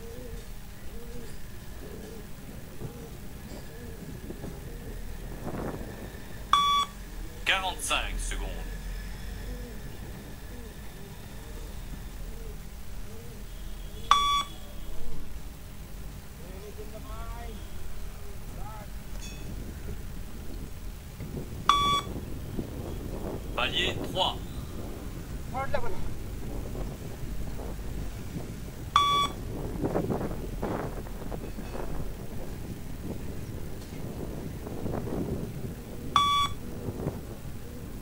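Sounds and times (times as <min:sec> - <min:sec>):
electronic beep: 0:06.6 - 0:06.9, 0:14.1 - 0:14.6, 0:21.7 - 0:22.1, 0:29.0 - 0:29.4, 0:36.2 - 0:36.6.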